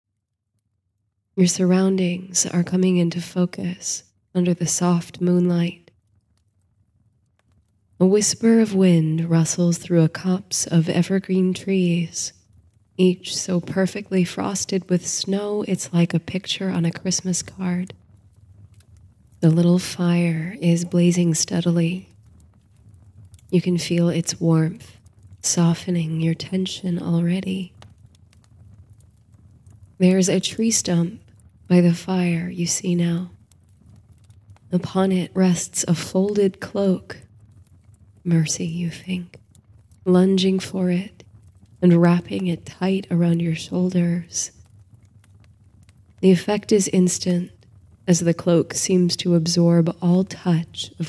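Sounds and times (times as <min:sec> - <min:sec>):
small fire crackling: 0:00.1 - 0:51.0
low steady background noise: 0:01.0 - 0:51.0.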